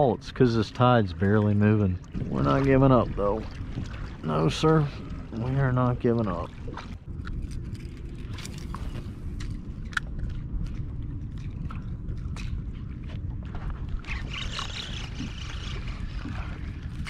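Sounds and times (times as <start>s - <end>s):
steady low rumble: 0.0s - 17.0s
water lapping against kayak hull: 0.0s - 17.0s
small ticks and splashes: 14.0s - 17.0s.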